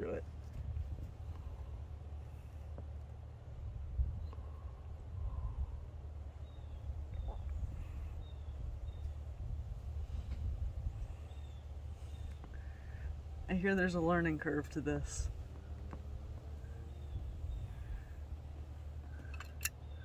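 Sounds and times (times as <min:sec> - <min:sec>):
wind rumbling on microphone: 0:00.0 - 0:20.0
bird chirping: 0:06.4 - 0:09.3, 0:11.0 - 0:14.0, 0:15.2 - 0:20.0.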